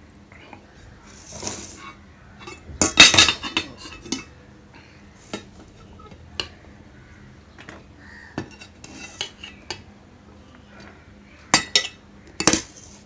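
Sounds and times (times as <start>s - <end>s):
soft scrape: 1.1s - 2.0s, 8.7s - 9.6s
steel dishes clinking: 1.3s - 4.3s, 11.5s - 12.7s.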